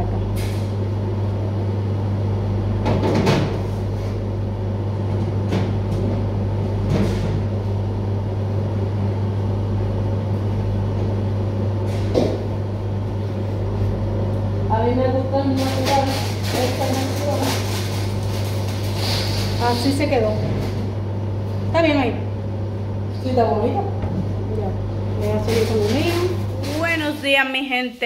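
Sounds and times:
kitchen machinery hum: 0.0 - 28.0.

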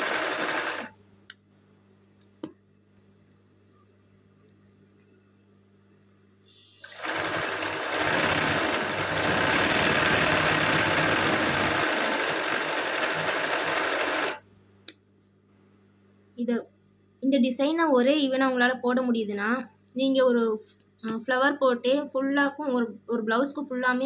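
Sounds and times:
sewing machine stitching: 0.0 - 0.9, 6.8 - 14.4.

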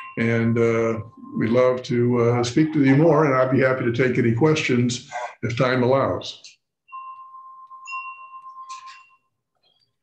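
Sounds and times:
chime-like ringing tone: 0.0 - 3.1, 6.8 - 10.0.

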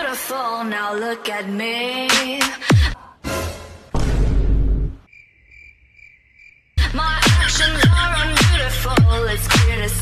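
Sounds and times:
cricket chirping: 5.0 - 6.8
loud electronic music: 6.8 - 10.0.

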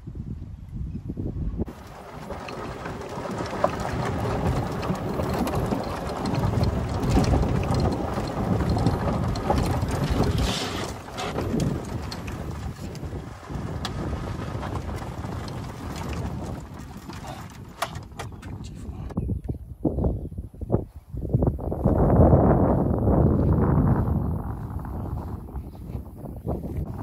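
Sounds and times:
wind buffeting microphone: 0.0 - 27.0
golf cart rumble: 1.6 - 20.4, 21.3 - 27.0
cart knocks and rattles: 1.7 - 19.1.

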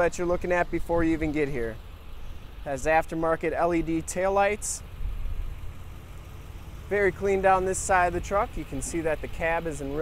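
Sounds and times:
diesel engine idling: 0.0 - 10.0
man's voice: 6.9 - 10.0.

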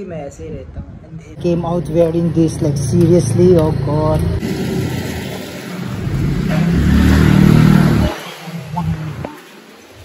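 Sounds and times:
vehicle engine passing by: 2.3 - 9.3.

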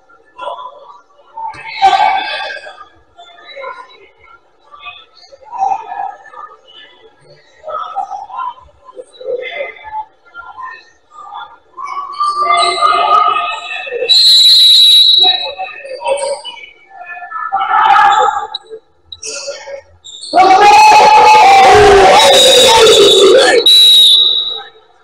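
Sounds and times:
scattered voices: 0.0 - 25.0
loud shouting: 1.5 - 2.8, 17.1 - 18.6, 19.2 - 24.8
referee's whistle blast: 22.5 - 24.7.

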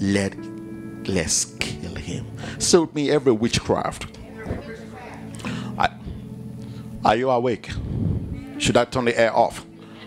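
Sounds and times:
electronic keyboard chord: 0.0 - 10.0.

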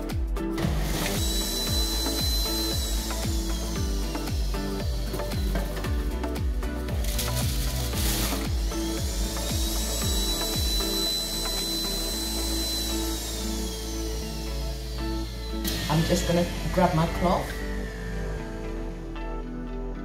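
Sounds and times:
background music with steady beat: 0.0 - 20.0
electric juicer motor whining: 0.4 - 19.7.

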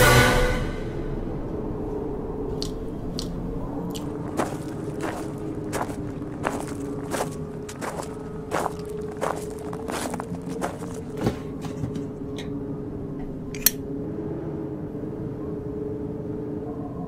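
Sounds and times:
faint steady hum: 0.9 - 17.0
footsteps crunching over debris: 2.6 - 12.1.

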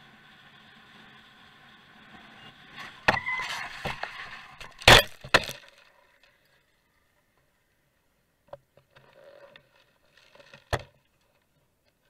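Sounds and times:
faint road noise: 0.0 - 12.0.

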